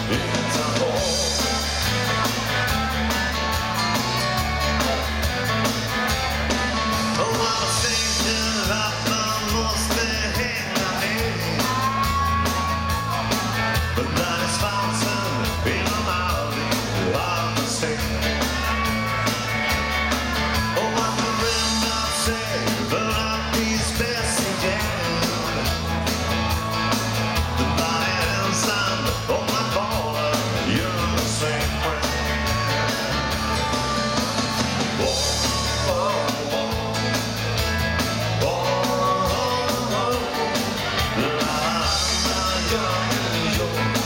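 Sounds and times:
drum kit beat: 0.0 - 44.0
electric bass line: 0.0 - 44.0
electric guitar: 0.0 - 44.0
keyboards: 0.0 - 44.0.

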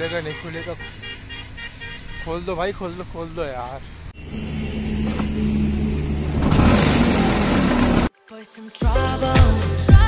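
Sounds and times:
scooter engine running: 4.2 - 8.1.

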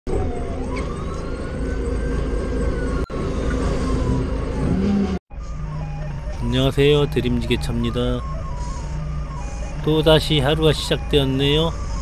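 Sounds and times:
siren-like wail: 0.1 - 12.0.

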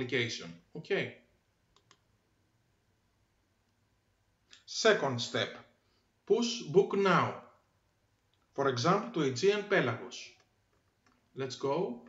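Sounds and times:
computer mouse clicks: 1.7 - 2.1.

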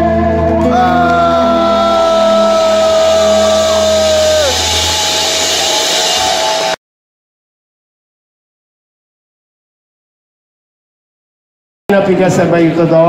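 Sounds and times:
rock band holding final note: 0.6 - 6.8.

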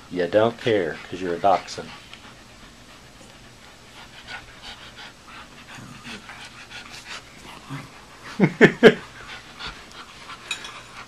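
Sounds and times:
dog panting: 0.1 - 11.0.

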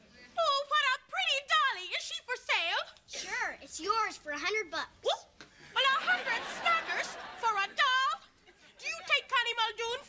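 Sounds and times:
girl talking: 0.4 - 8.2.

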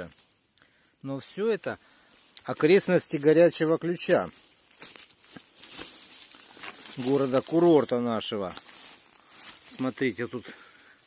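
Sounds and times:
footsteps through dry leaves: 1.4 - 11.0.

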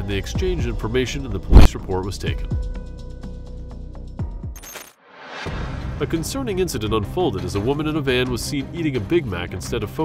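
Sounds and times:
background music: 0.0 - 4.5, 5.2 - 10.0.

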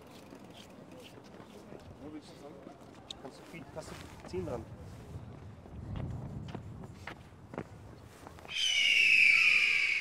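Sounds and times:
faint outdoor background noise: 0.0 - 10.0.

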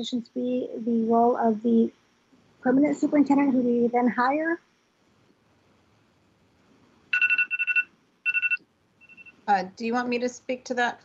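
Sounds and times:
electronic telephone ringtone: 7.1 - 9.4.

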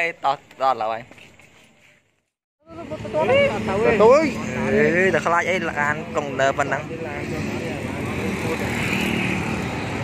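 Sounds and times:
motorbike engine and road noise: 2.7 - 10.0.

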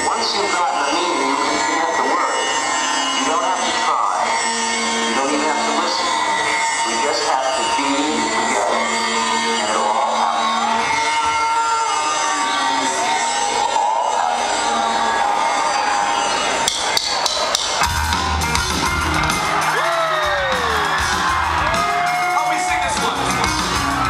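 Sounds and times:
heavy rock band playing: 0.0 - 24.0
crowd cheering and whooping: 0.1 - 24.0
intro music: 16.4 - 24.0
drum and cymbal hits: 16.6 - 24.0.

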